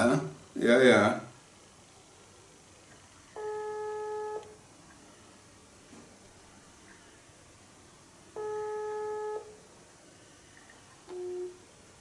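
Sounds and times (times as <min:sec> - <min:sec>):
phone ringing tone beep: 0:03.4 - 0:04.6, 0:08.4 - 0:09.6, 0:11.1 - 0:11.6.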